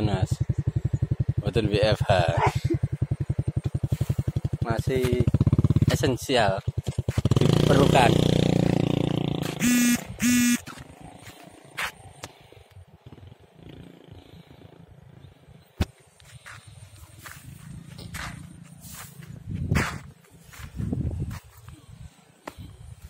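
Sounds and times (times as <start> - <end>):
footsteps through dry stubble and mud: 3.7 - 4.4, 10.6 - 12.1, 16.2 - 22.0
short high beeps: 9.6 - 10.7.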